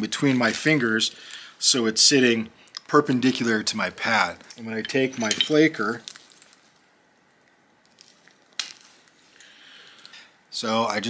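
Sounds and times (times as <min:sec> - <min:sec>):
stone flake cracking: 0:05.9 - 0:06.8.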